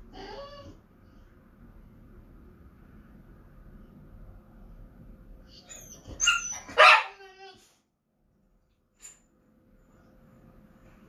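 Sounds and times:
dog barking: 0:06.3 - 0:07.3.

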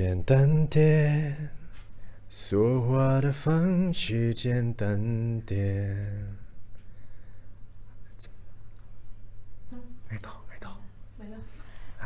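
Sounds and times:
low hum: 0:00.0 - 0:12.0
person whispering softly: 0:09.7 - 0:12.0.

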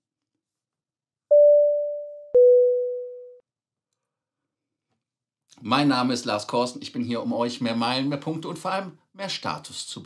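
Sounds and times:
two-note electronic chime: 0:01.3 - 0:03.4.

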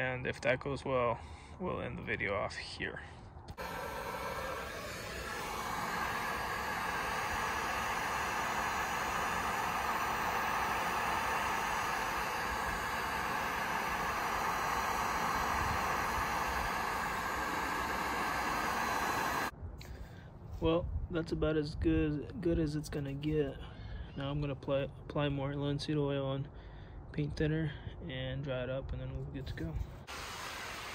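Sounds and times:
heat gun fan blowing: 0:03.5 - 0:20.0, 0:29.6 - 0:30.9.

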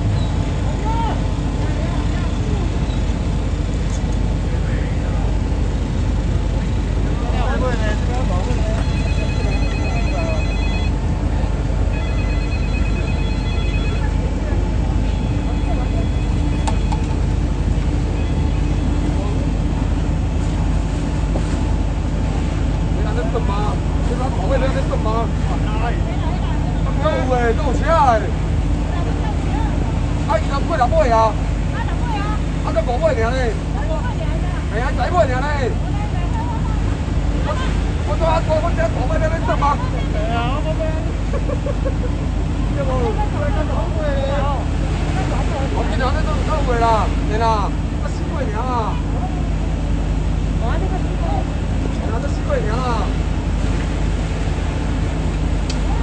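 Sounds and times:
voices talking: 0:00.0 - 0:56.0
phone ringtone warbling: 0:08.8 - 0:11.0, 0:11.9 - 0:14.2.

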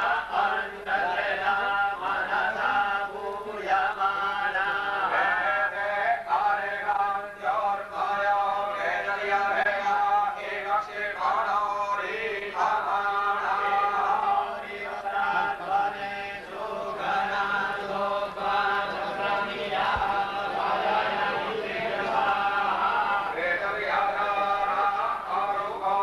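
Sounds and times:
voices chanting in unison: 0:00.0 - 0:26.0.

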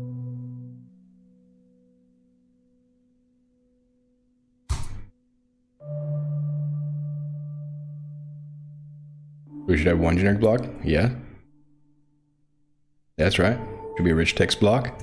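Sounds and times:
ambient music with held tones: 0:00.0 - 0:15.0.

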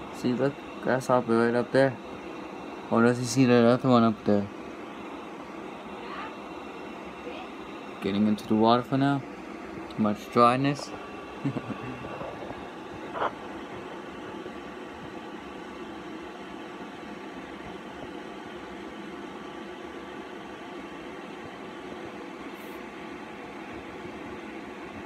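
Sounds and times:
background hum and hiss: 0:00.0 - 0:25.0.

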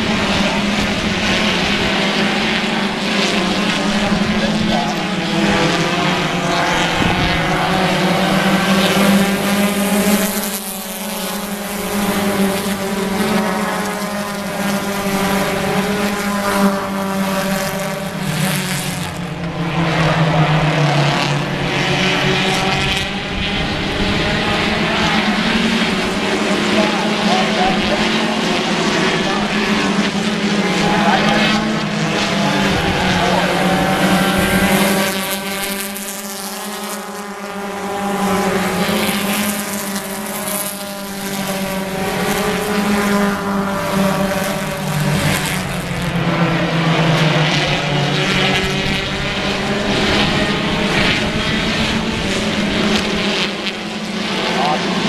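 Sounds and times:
race car engines running hard: 0:00.0 - 0:55.0.

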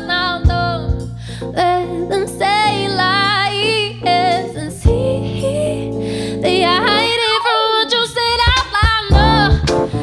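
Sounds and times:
woman singing: 0:00.0 - 0:10.0.

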